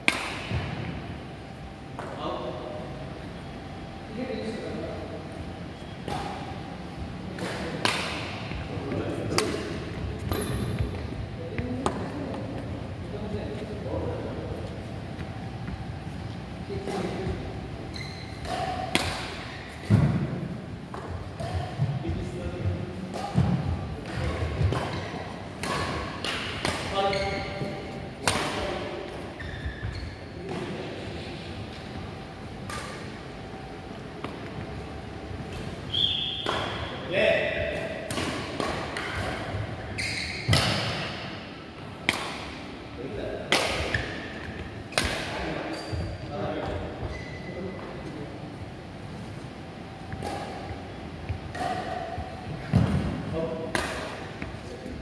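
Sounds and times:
rackets hitting shuttlecock: 0:00.0 - 0:00.9, 0:07.3 - 0:11.0, 0:18.4 - 0:22.0, 0:23.1 - 0:27.3, 0:28.2 - 0:28.8, 0:35.5 - 0:37.0, 0:37.6 - 0:42.7, 0:43.4 - 0:45.7, 0:50.1 - 0:54.5.

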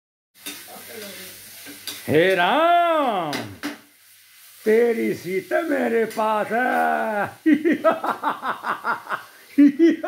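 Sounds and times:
high-pitched hiss: 0:00.4 - 0:10.0.

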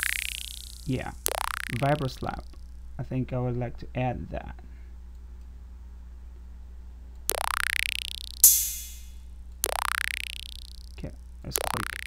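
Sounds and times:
electronic vibraslap rattle: 0:00.0 - 0:02.8, 0:07.3 - 0:10.9, 0:11.6 - 0:12.0
electronic drum hit: 0:08.4 - 0:09.1.

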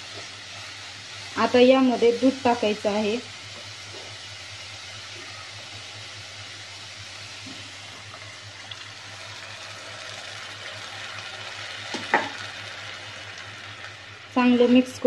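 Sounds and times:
food sizzling in a pan: 0:00.0 - 0:15.0
milk pouring: 0:08.5 - 0:10.8.

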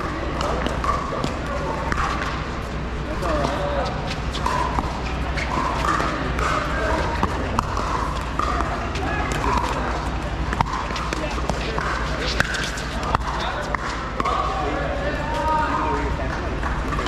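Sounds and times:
background chatter: 0:00.0 - 0:17.0.

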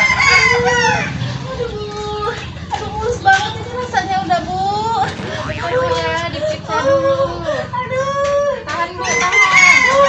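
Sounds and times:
rooster crowing: 0:00.0 - 0:01.4, 0:09.0 - 0:10.0.

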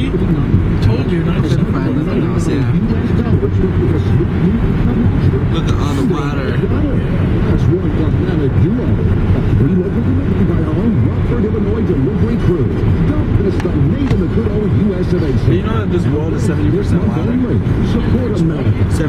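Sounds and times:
car road and engine noise: 0:00.0 - 0:19.0
indistinct voices talking: 0:00.0 - 0:19.0.

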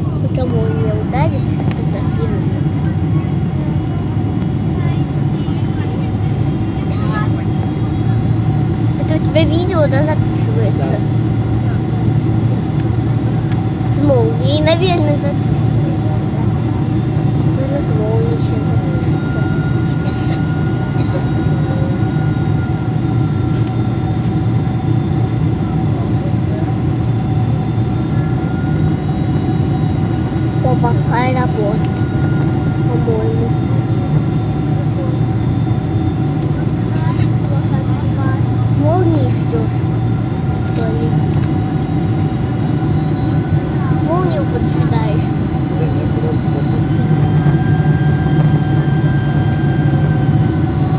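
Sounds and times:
airliner engines and airflow roar: 0:00.0 - 0:50.9
faint steady whine: 0:00.0 - 0:50.9.

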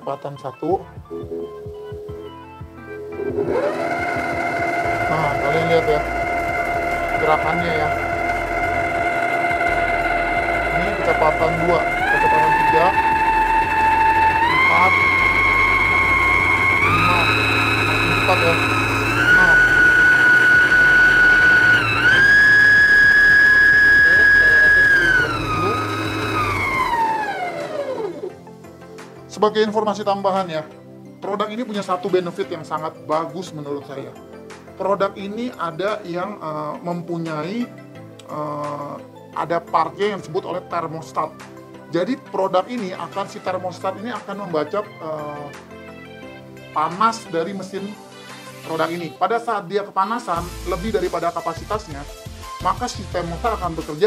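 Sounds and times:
soft background music with beat: 0:00.0 - 0:54.0
stand mixer motor whine: 0:03.0 - 0:28.6.

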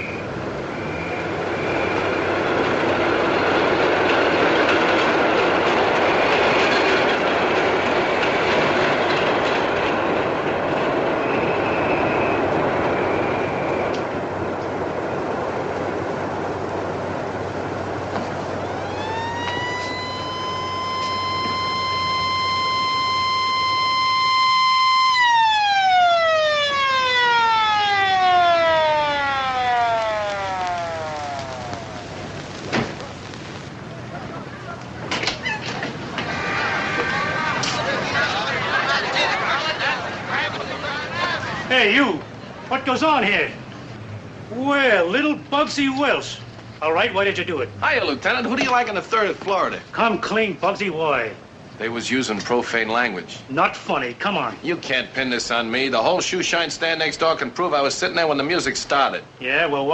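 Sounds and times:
steady rushing noise: 0:00.0 - 0:35.1
police siren wailing: 0:18.4 - 0:33.3.

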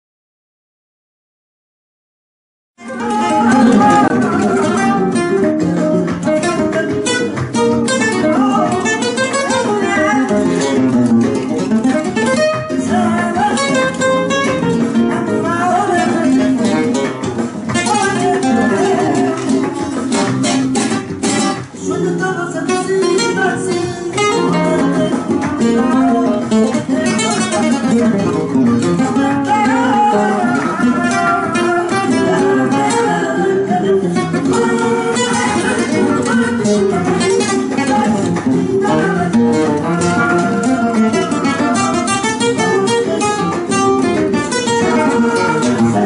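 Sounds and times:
flamenco guitar playing: 0:02.8 - 0:46.0
sharp percussive guitar strums: 0:02.8 - 0:46.0.

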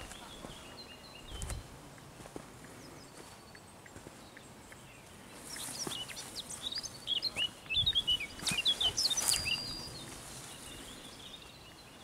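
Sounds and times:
footsteps in grass: 0:00.0 - 0:04.4, 0:05.1 - 0:11.6
songbird singing: 0:00.0 - 0:12.0.

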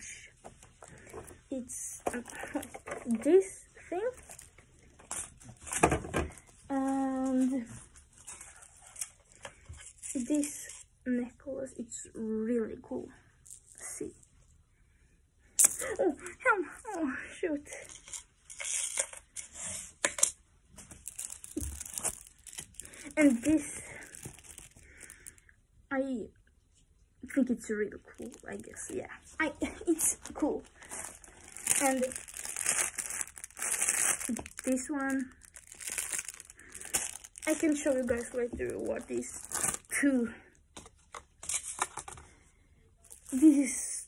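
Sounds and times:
plastic packaging crinkling: 0:04.0 - 0:07.5, 0:20.8 - 0:25.4, 0:29.7 - 0:40.0, 0:43.0 - 0:43.7.

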